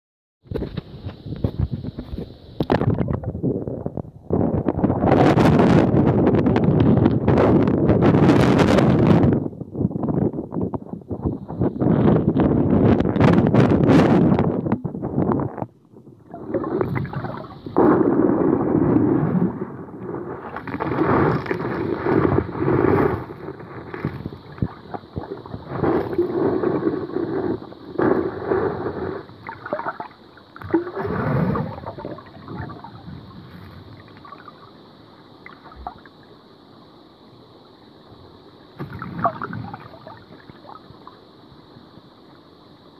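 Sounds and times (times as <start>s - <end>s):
muffled water sloshing and gurgling: 0.5s - 36.6s, 38.6s - 41.8s.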